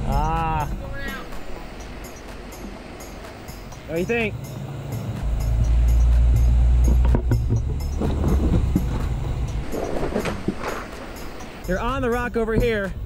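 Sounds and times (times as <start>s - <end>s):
truck engine rumbling under load: 0.0s - 13.0s
rocks crunching under tire: 6.2s - 11.6s.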